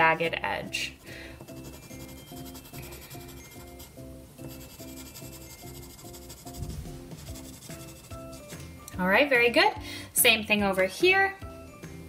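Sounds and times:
quiet background music: 0.0s - 12.0s
colored pencil rubbing on paper: 0.9s - 8.6s.

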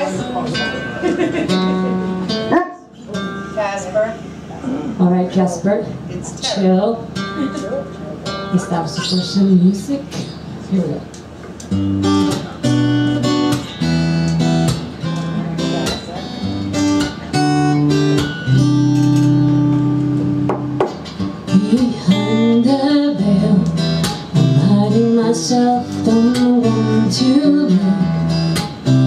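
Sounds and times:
acoustic guitar chords: 0.0s - 5.2s, 5.8s - 29.0s
woman singing: 21.5s - 28.6s.

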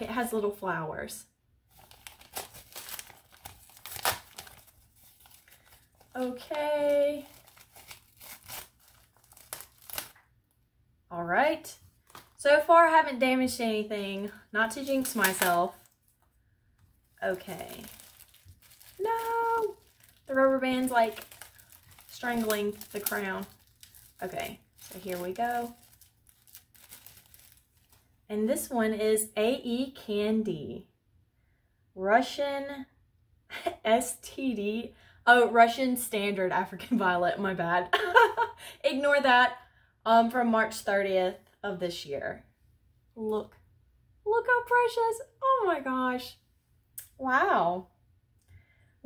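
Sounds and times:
paper wrapping crinkling: 1.7s - 10.3s, 11.9s - 12.4s, 14.0s - 16.2s, 17.0s - 28.2s.

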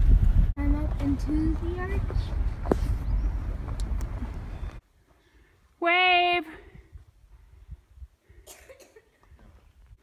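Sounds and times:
person coughing: 8.4s - 9.1s.

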